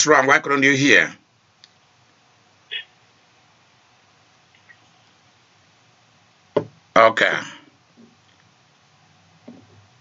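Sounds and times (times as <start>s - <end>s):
man's voice: 7.0s - 7.7s.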